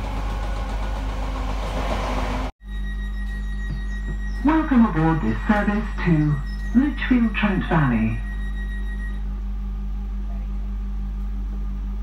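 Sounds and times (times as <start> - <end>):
train carriage hum and drone: 0.0 - 12.0.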